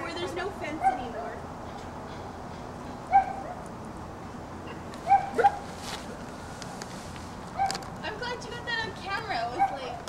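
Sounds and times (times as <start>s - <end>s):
dog whining yips: 3.1s - 3.6s, 4.6s - 5.7s, 7.6s - 7.8s.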